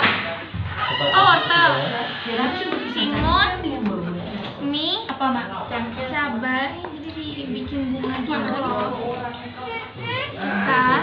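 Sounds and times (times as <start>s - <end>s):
women and children chattering: 1.0s - 11.0s.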